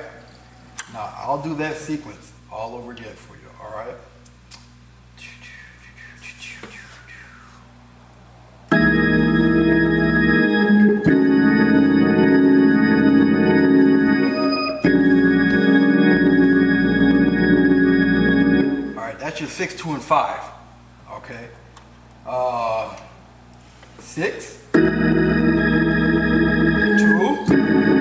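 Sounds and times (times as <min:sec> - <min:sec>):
faint hum: 0:00.0 - 0:28.0
organ playing held chords: 0:08.7 - 0:19.2, 0:24.7 - 0:28.0.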